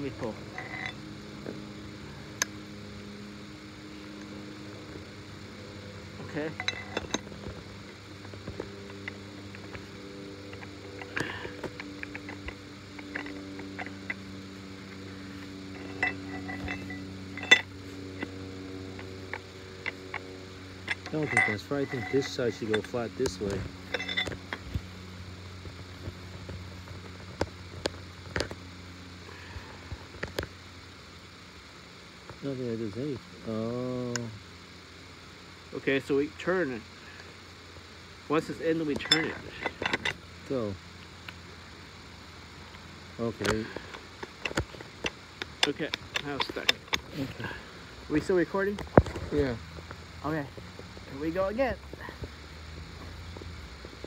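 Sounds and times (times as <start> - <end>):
low machine hum: 0.0 - 54.0
metal clicks and knocks: 6.3 - 7.6, 15.7 - 18.4, 20.9 - 24.7.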